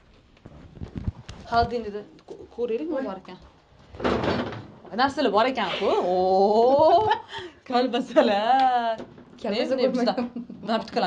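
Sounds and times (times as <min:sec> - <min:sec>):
women's voices: 0:01.4 - 0:03.4, 0:04.9 - 0:11.0.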